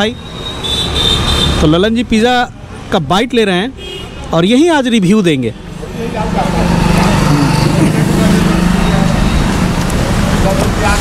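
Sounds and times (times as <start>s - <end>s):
traffic engine hum: 0.0s - 11.0s.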